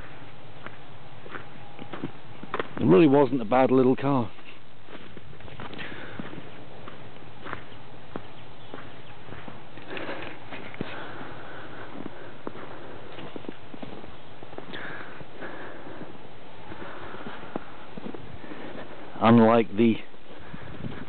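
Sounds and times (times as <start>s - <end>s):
footsteps crunching on snow: 0.0s - 21.0s.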